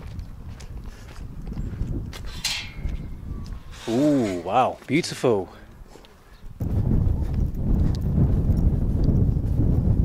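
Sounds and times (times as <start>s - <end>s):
wind rumble on microphone: 0.0s - 4.4s, 5.7s - 10.0s
footsteps on dirt and gravel: 0.0s - 10.0s
brief scrape: 3.6s - 4.5s.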